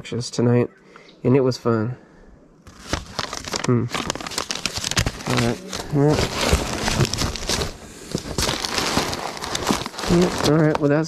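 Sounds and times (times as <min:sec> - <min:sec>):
paper rustling: 0:02.6 - 0:11.0.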